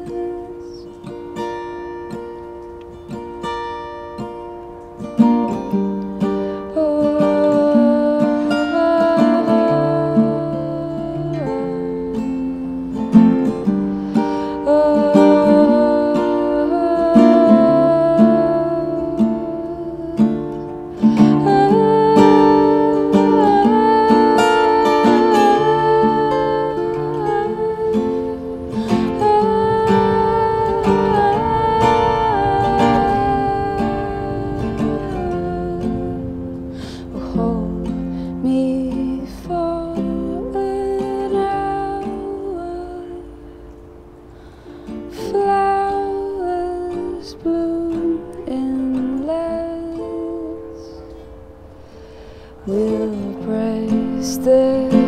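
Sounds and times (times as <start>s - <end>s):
acoustic guitar playing: 0.0s - 55.0s.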